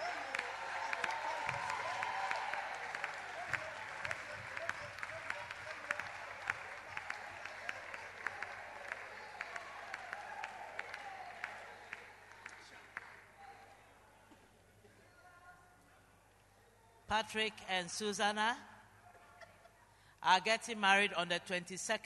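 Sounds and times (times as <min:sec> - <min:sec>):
crowd applauding: 0:00.0 - 0:13.3.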